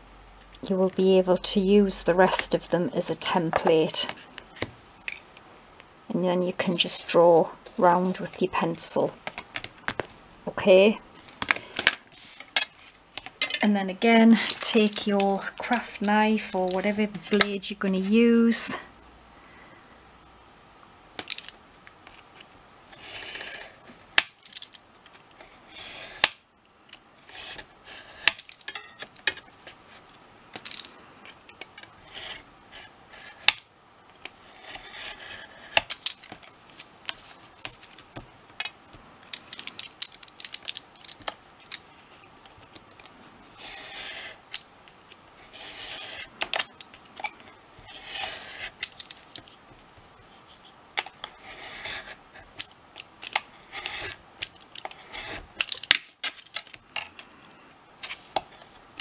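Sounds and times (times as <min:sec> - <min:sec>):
knife blade scratching through card: 0:45.4 - 0:46.3, 0:47.9 - 0:48.8.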